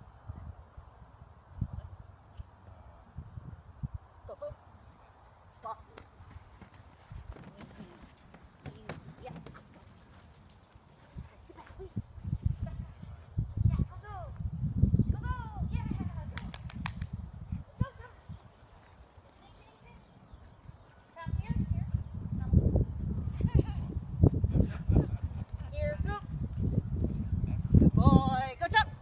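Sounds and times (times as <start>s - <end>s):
wind rumbling on microphone: 0.0s - 4.4s, 11.2s - 18.7s, 20.3s - 29.0s
running footfalls on grass: 6.0s - 7.6s.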